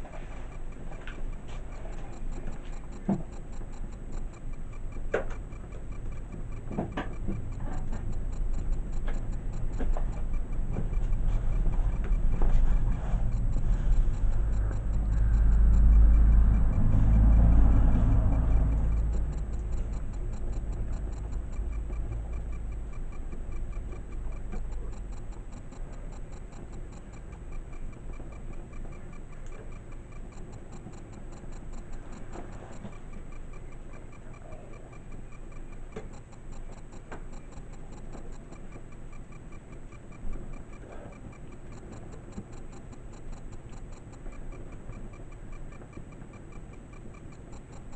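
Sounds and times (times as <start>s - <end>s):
faint even ticking: 0.0s - 47.9s.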